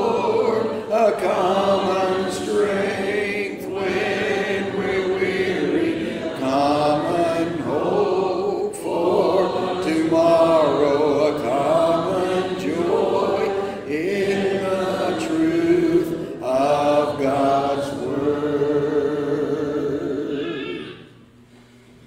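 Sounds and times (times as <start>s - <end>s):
congregation singing a hymn: 0.0s - 21.1s.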